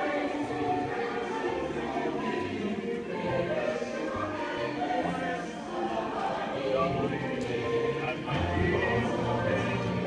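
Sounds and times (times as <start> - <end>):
choir with held voices: 0.0 - 10.0.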